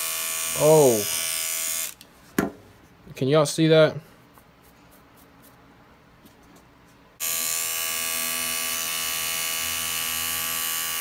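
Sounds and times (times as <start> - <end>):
hair trimmer buzzing: 0.0 - 2.0, 7.2 - 11.0.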